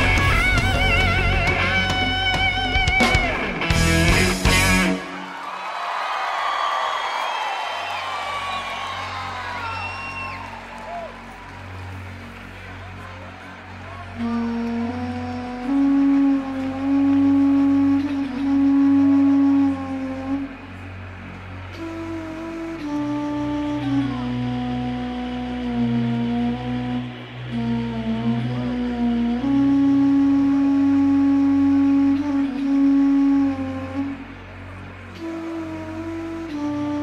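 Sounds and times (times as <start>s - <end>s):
low held bass notes: 0.0s - 5.2s, 9.1s - 37.0s
synthesizer flute-like melody: 7.7s - 37.0s.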